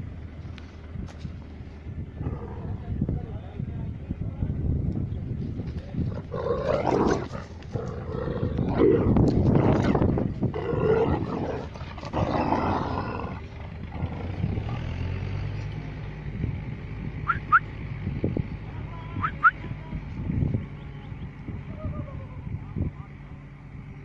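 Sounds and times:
dogs growling: 2.2s - 3.0s, 6.0s - 14.8s.

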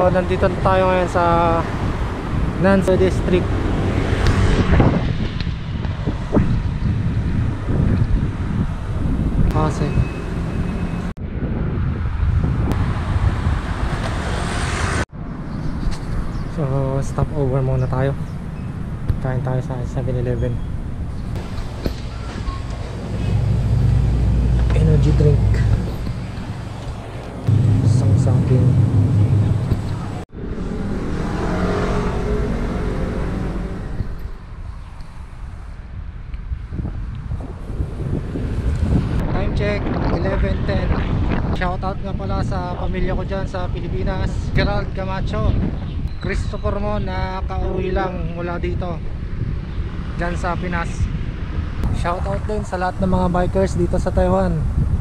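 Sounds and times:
street traffic: 0.0s - 55.0s
wind rushing over microphone: 0.0s - 55.0s.

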